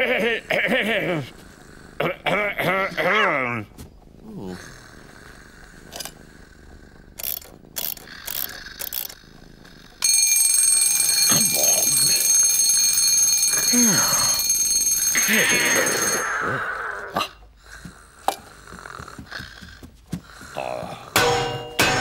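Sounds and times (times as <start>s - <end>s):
alarm clock bells ringing: 10.0s - 17.0s.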